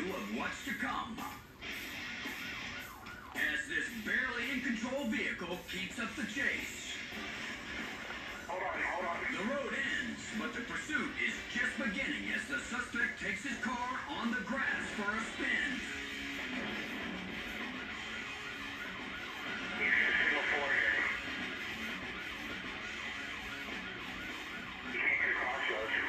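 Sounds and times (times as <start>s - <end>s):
background music: 0.0s - 26.0s
police siren wailing: 0.0s - 26.0s.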